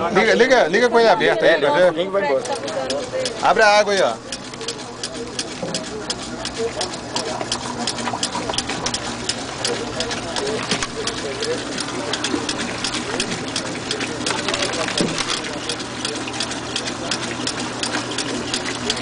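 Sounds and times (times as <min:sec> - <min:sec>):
steady motor hum: 0:00.0 - 0:19.0
rapid mechanical clatter: 0:02.2 - 0:19.0.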